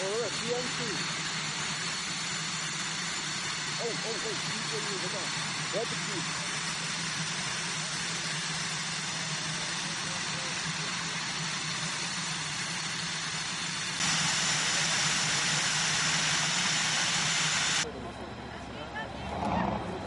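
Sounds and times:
tow tractor engine hissing: 0.0 - 20.0.

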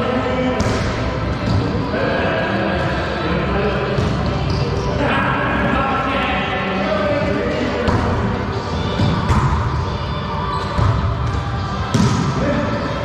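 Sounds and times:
players' voices: 0.0 - 13.0.

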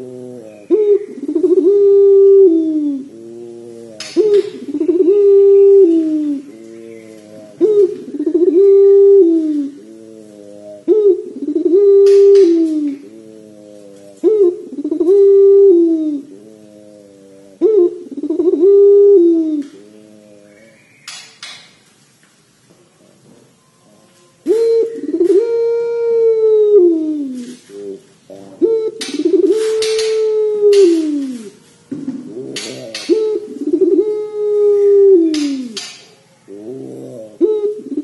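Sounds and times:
dove cooing: 0.0 - 21.6, 23.0 - 38.0.

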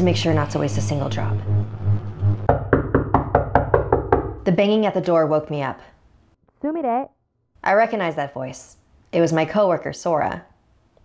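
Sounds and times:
low droning music: 0.0 - 3.8.

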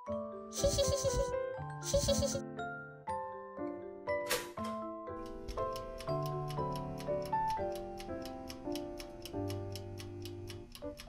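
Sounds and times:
light background music: 0.0 - 11.0
toaster timer ticking: 0.6 - 2.4, 5.2 - 11.0.

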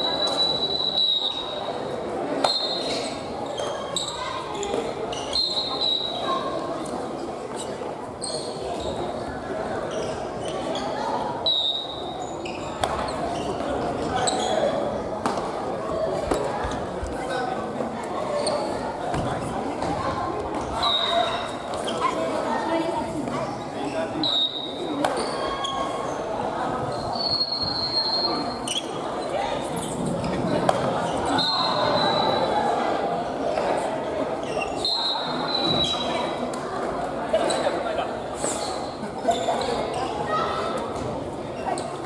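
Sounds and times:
chatter in sports hall: 0.0 - 42.0
echoing hubbub of voices: 0.0 - 42.0
sneaker squeaks on wooden floor: 2.4 - 6.2, 7.6 - 9.2, 11.5 - 14.8, 23.8 - 30.1, 31.0 - 32.5, 34.4 - 36.4
sneakers squeaking on wooden floor: 7.6 - 9.2, 34.4 - 36.4.

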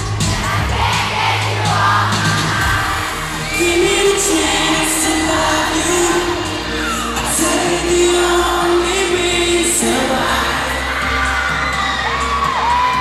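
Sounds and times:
crowd screaming: 0.0 - 13.0
live pop song singing: 0.0 - 13.0.

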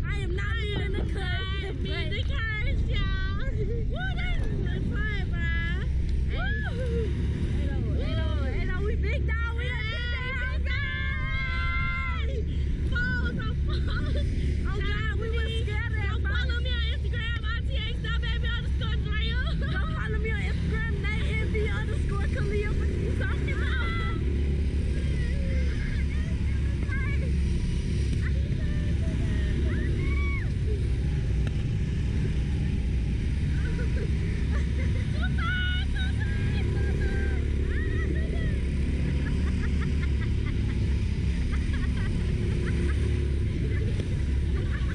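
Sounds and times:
wind buffeting microphone: 0.0 - 44.9
riders screaming: 1.0 - 44.9.

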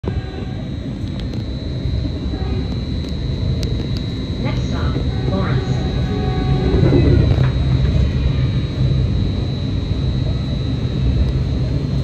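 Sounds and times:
train rumbling on rails: 0.0 - 12.0.

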